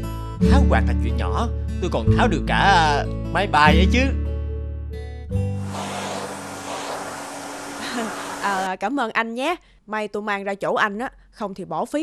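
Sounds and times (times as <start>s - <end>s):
electric fan whirring: 5.5s - 8.7s.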